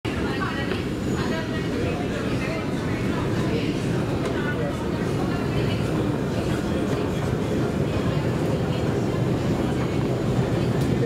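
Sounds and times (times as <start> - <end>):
indistinct voices of people: 0.1 - 11.0.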